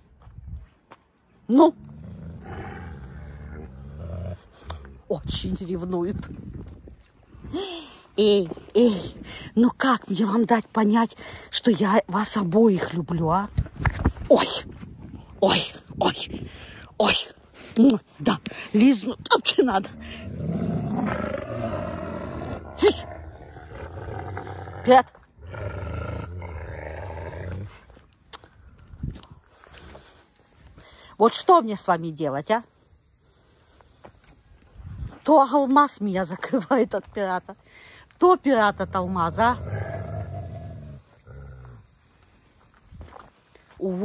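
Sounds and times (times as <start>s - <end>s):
wolves growling: 1.8s - 4.6s, 19.8s - 27.8s, 38.7s - 41.9s.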